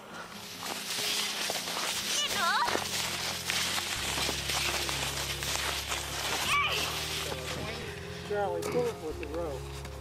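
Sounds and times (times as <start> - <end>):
footsteps crunching through snow: 0.0 - 10.0.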